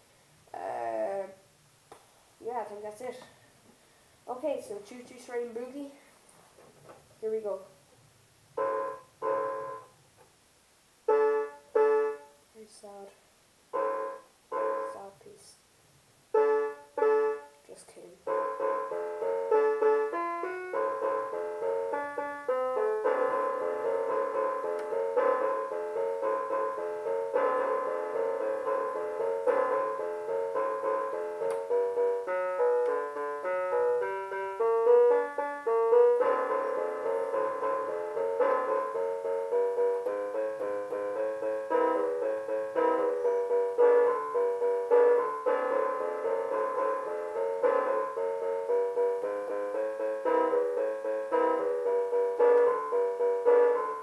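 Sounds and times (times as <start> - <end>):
toy electronic keyboard boogie: 8.6 - 9.9, 27.4 - 48.2.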